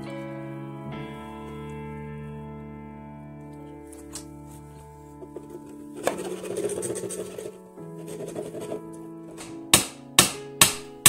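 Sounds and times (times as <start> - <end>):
background music: 0.0 - 11.0
hammer driving nails into wood: 8.4 - 10.9.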